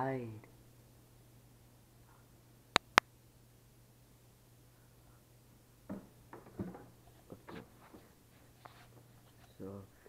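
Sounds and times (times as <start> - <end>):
faint low hum: 0.0 - 10.0
sharp clicks: 2.8 - 3.1.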